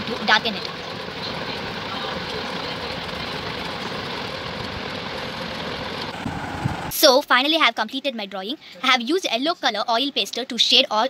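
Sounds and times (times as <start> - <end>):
background rumble and hiss: 0.0 - 8.2.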